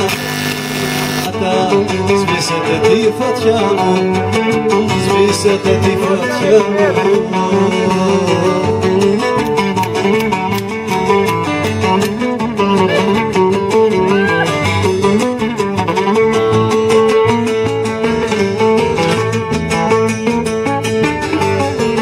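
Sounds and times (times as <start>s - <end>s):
acoustic bass guitar: 0.0s - 22.0s
strummed lutes: 0.0s - 22.0s
violin melody: 12.8s - 14.7s.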